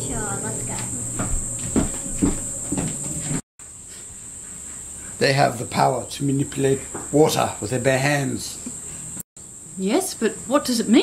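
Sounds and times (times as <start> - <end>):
footsteps across a room: 0.6 - 3.4.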